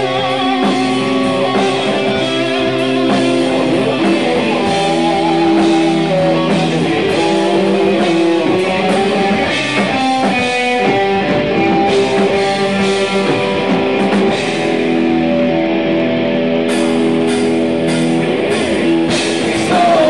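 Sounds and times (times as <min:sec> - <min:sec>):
drum kit: 0:00.0 - 0:20.0
electric guitars holding notes: 0:00.0 - 0:20.0.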